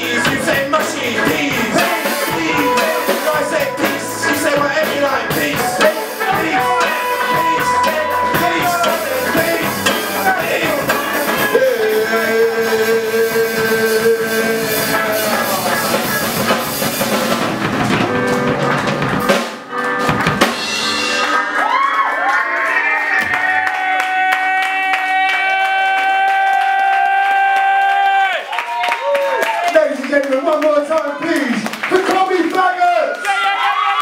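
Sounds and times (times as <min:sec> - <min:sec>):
live ska band playing: 0:00.0 - 0:23.8.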